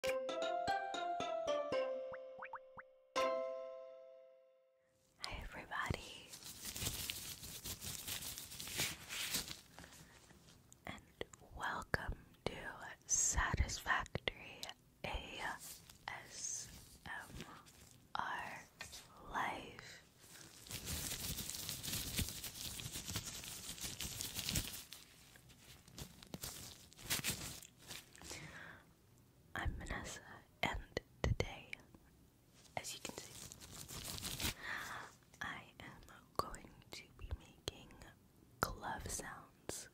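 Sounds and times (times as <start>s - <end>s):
music jingle: 0.0s - 4.8s
person whispering: 5.2s - 6.4s, 10.8s - 20.1s, 29.6s - 31.9s, 32.8s - 33.4s, 35.0s - 39.9s
latex gloves rubbing and crinkling: 5.9s - 10.7s, 15.5s - 18.1s, 20.0s - 28.3s, 32.5s - 35.1s.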